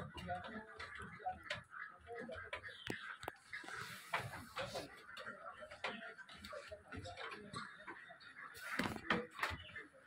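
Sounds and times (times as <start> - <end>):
quiet voices: 0.0 - 10.0.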